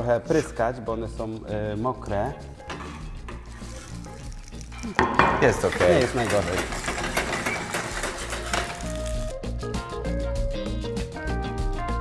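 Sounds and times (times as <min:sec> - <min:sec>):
background music with regular beat: 0:00.0 - 0:12.0
pierogi sizzling in hot oil: 0:03.3 - 0:09.4.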